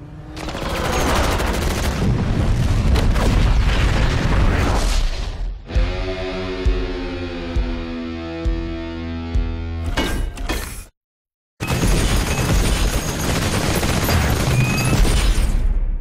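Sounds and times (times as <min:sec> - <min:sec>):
explosions: 0:01.8 - 0:05.5.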